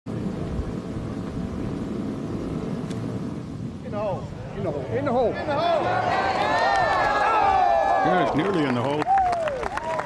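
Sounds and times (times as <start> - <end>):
jet airliner rumble overhead: 0.1 - 6.4.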